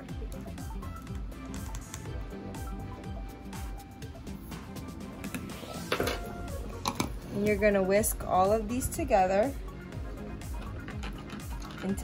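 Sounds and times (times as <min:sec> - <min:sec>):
background music: 0:00.0 - 0:12.0
whisk clicking and scraping bowl: 0:10.4 - 0:12.0.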